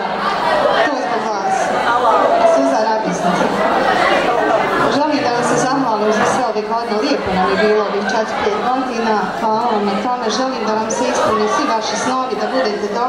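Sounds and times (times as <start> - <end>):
overlapping chatter in a hall: 0.0 - 13.0.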